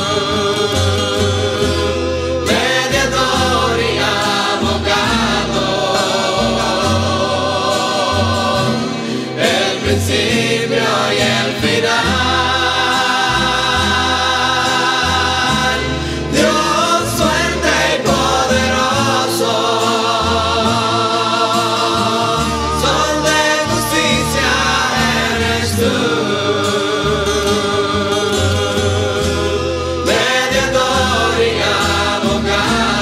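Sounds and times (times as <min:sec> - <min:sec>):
choir singing in harmony: 0:00.0 - 0:33.0
guitar accompaniment: 0:00.0 - 0:33.0.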